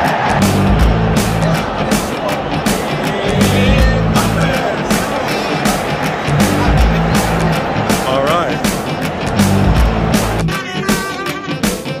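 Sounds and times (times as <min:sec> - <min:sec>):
strummed guitars: 0:00.0 - 0:12.0
trumpet playing sustained notes: 0:10.4 - 0:12.0.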